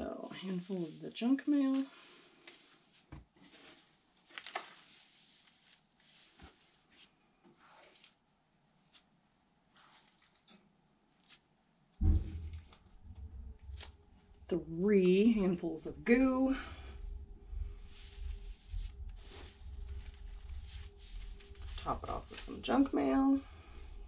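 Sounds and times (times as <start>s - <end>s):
shredded paper rustling: 0.3s - 7.1s, 17.8s - 22.6s
wet handling squelch: 0.4s - 11.6s.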